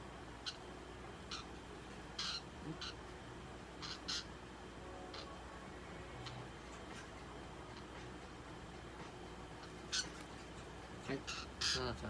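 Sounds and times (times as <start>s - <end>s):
budgerigar chirping: 0.4s - 0.6s, 1.3s - 1.5s, 2.2s - 3.0s, 3.8s - 4.3s, 9.6s - 10.2s, 11.1s - 12.0s.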